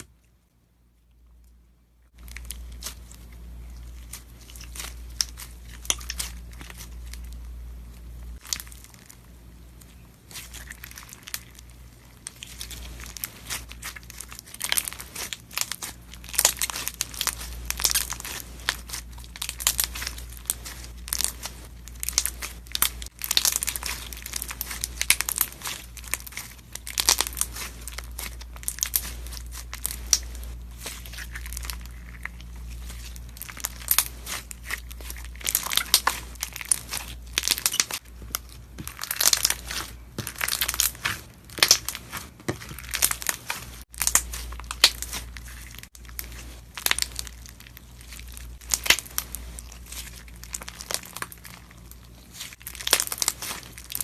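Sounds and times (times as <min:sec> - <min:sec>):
slime squeezed crackling and popping: 0:02.1 - 0:54.0.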